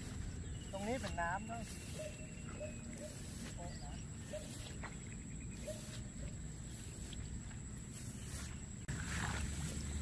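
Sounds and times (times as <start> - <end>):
footsteps through wet grass and water: 0.0 - 10.0.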